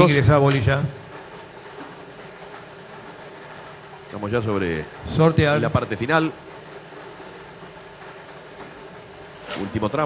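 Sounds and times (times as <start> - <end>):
balls rattling in a drum: 0.0 - 10.0.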